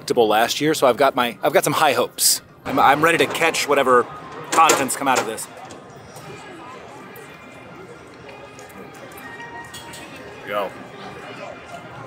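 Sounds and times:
faint crowd chatter: 0.0s - 12.0s
background music: 2.1s - 12.0s.

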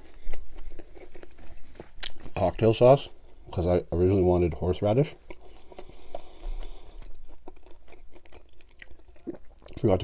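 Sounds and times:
chewing with mouth clicks: 0.0s - 3.6s, 5.1s - 10.0s.

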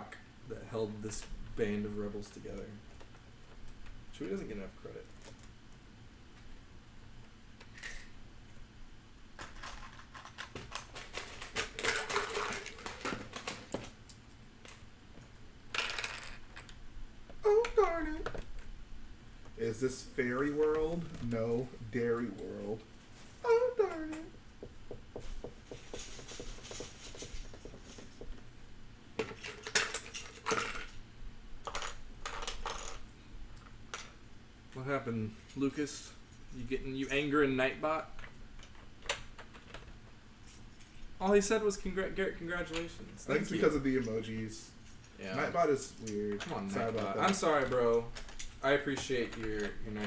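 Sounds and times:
plastic bricks clicking and rattling: 9.4s - 13.9s.

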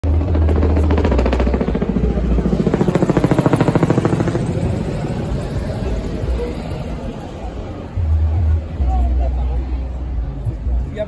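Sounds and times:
helicopter rotor beating: 0.0s - 10.4s.

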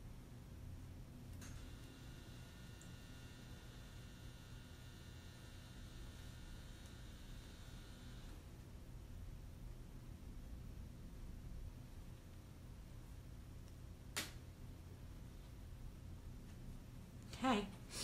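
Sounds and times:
faint high-pitched whine: 0.0s - 18.0s
steady low hum: 0.0s - 18.0s.

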